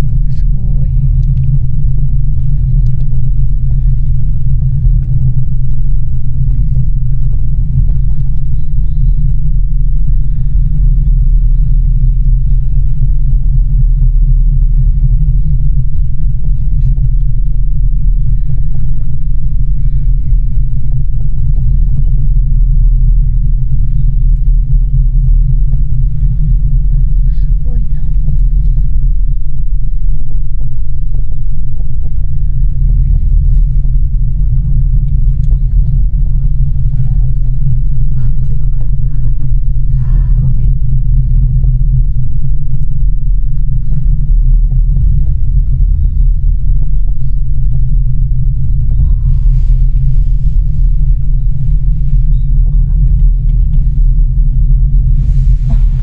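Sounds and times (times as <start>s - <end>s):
gondola cabin rumble: 0.0s - 56.0s.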